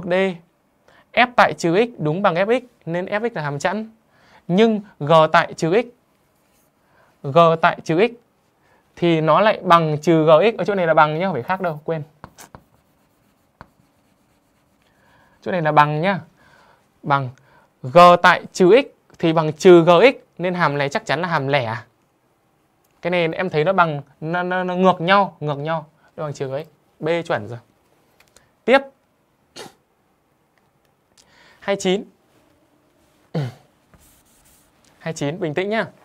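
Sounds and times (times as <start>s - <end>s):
chalk tapping on chalkboard: 12.2s - 14.9s, 33.9s - 34.7s.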